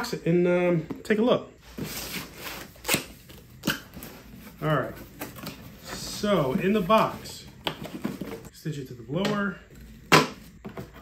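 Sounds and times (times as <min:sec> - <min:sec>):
cardboard rustling: 0:01.6 - 0:08.5.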